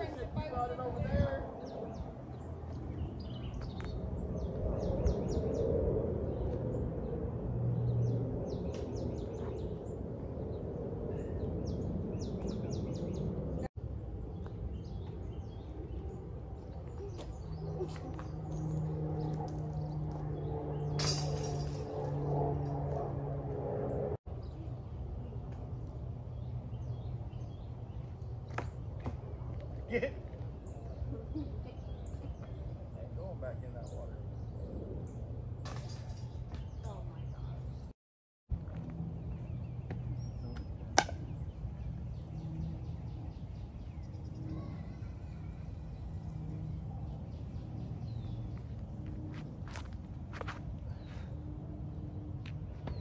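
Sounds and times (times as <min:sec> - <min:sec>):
birds chirping: 0:00.0 - 0:22.0, 0:38.7 - 0:53.0
outdoor background noise: 0:00.0 - 0:53.0.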